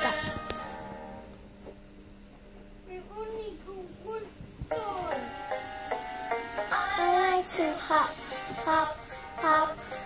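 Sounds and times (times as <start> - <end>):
steady low hum: 0.0 - 10.0
children's song singing: 4.0 - 10.0.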